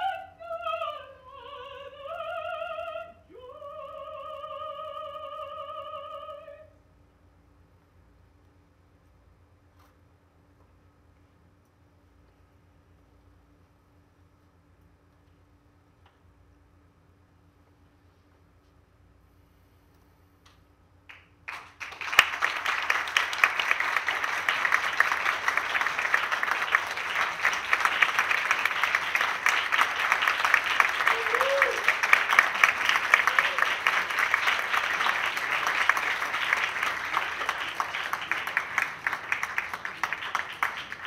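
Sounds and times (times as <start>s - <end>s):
audience applauding: 21.1s - 41.0s.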